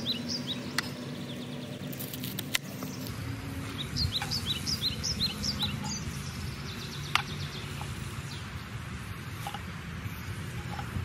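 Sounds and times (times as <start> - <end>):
songbird chirping: 0.0 - 8.8.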